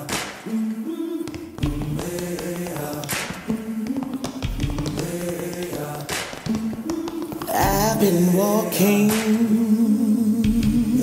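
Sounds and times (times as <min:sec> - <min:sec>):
men's choir singing chords: 0:00.0 - 0:11.0
tap shoes on wooden floor: 0:01.2 - 0:08.2.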